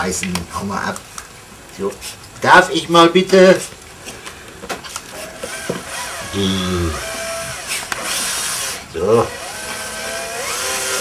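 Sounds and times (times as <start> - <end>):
cordless drill driving screw: 5.2 - 11.0.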